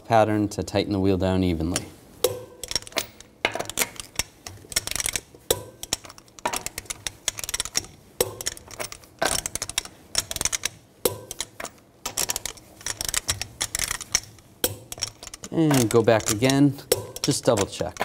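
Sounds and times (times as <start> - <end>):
torque wrench clicking: 1.8 - 18.0.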